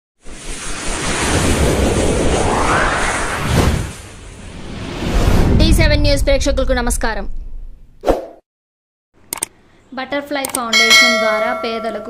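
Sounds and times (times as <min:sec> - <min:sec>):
rushing whoosh: 0:00.4 - 0:05.6.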